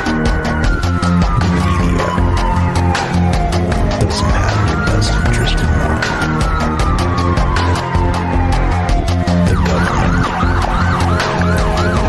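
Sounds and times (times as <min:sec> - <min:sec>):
dark music with heavy bass: 0:00.0 - 0:12.0
siren wailing up and down: 0:00.0 - 0:12.0.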